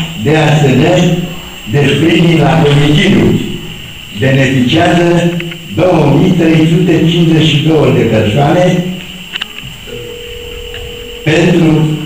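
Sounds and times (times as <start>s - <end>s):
steady electronic tone: 0.0s - 7.2s, 9.2s - 12.0s.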